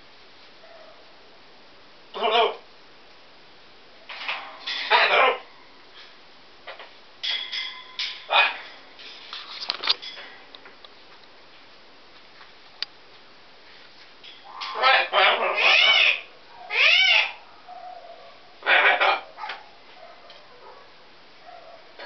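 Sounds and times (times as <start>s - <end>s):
parrots squawking: 2.1s - 2.6s, 4.1s - 5.5s, 7.2s - 8.8s, 14.4s - 17.4s, 18.6s - 19.6s.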